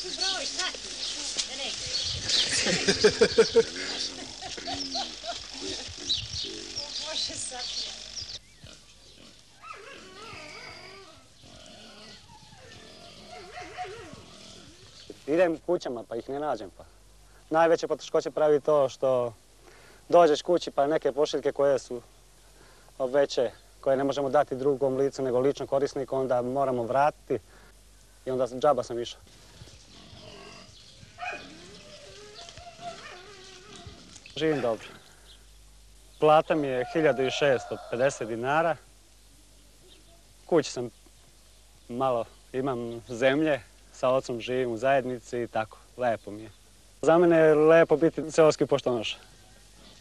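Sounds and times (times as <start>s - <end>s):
steady low hum: 0.0s - 10.2s, 21.8s - 50.0s
faint wavering animal calls: 0.0s - 15.2s, 29.4s - 35.5s.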